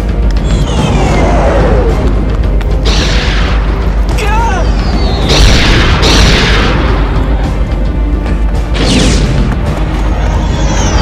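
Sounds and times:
deep rumbling score: 0.0 - 11.0.

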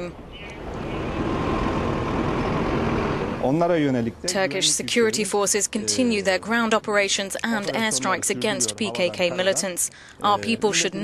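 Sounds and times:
rumbling hiss of vehicles: 0.3 - 4.2
person speaking: 4.2 - 11.0.

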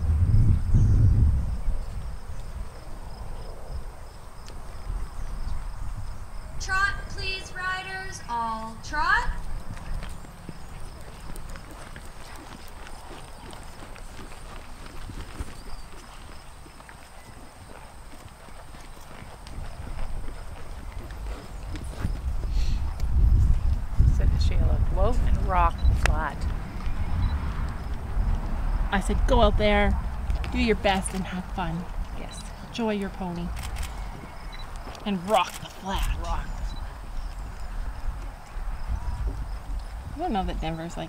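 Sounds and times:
horse hoofbeats on sand: 7.4 - 41.0.

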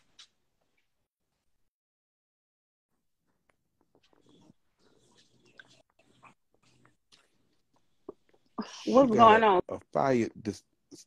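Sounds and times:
faint small clicks and rustles: 3.2 - 8.6.

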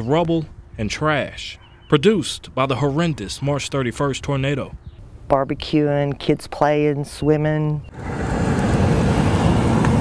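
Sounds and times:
vehicles driving past: 7.9 - 10.0.

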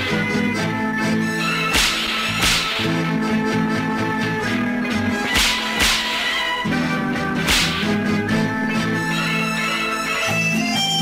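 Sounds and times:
instrumental film music: 0.0 - 11.0
whip cracks: 1.6 - 3.0, 5.2 - 6.6, 7.4 - 8.1.

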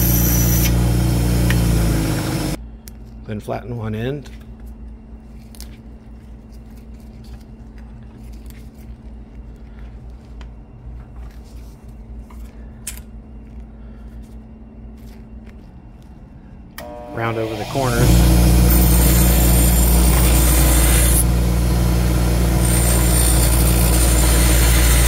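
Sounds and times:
low hum: 4.2 - 25.0.

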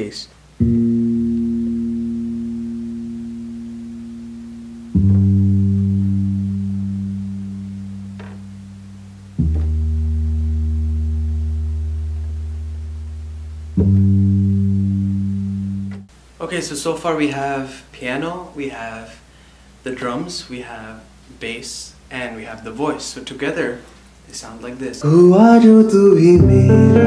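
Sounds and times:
low keyboard bass notes: 0.6 - 16.1, 25.0 - 27.0.

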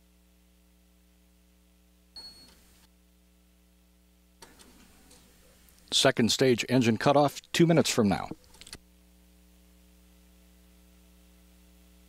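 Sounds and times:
low electrical hum: 0.0 - 12.0
short high beep: 2.2 - 2.6.

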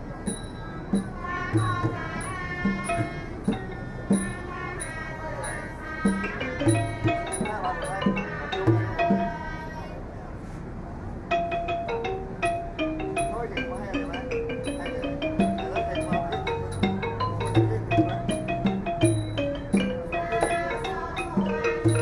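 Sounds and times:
wooden xylophone melody: 0.2 - 9.8, 11.3 - 22.0.

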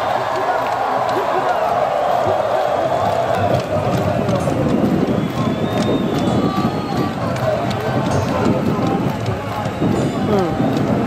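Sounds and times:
stadium crowd calling and chanting: 0.0 - 11.0.

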